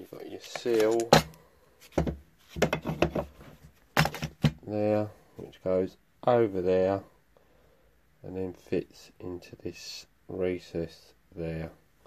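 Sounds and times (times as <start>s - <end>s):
small parts clicking and rubbing: 0.3s - 1.2s.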